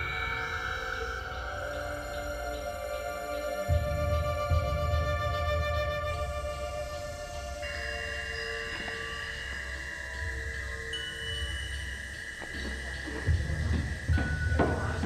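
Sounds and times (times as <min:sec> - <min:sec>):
suspenseful drone score: 0:00.0 - 0:15.0.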